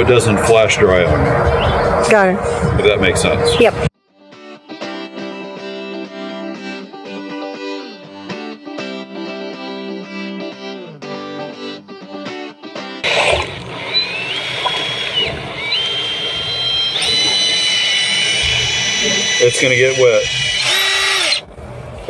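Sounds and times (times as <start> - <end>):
guitar music: 3.6 - 17.7
power drill whine: 13.8 - 21.6.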